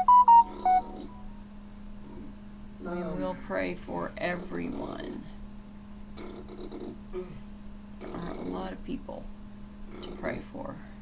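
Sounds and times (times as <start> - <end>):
electronic notification chime: 0.0 - 1.3
low electrical hum: 0.0 - 11.0.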